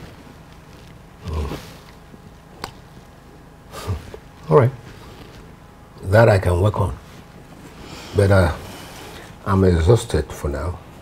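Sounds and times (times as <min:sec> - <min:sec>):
man grunting: 0:01.2 - 0:01.8.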